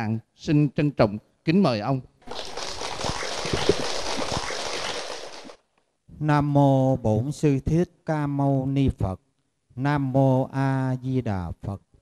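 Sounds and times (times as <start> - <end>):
audience applauding: 2.2 - 5.6.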